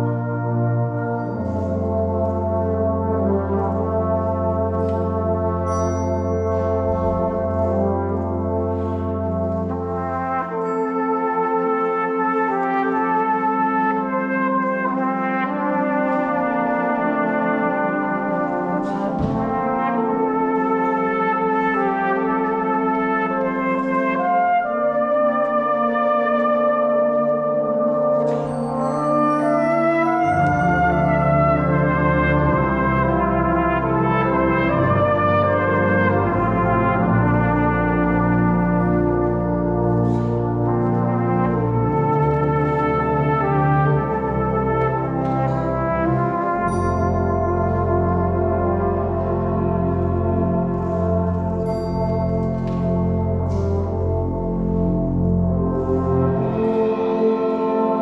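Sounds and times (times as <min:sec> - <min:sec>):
brass band playing: 0:00.0 - 0:58.0
solo brass melody: 0:00.0 - 0:58.0.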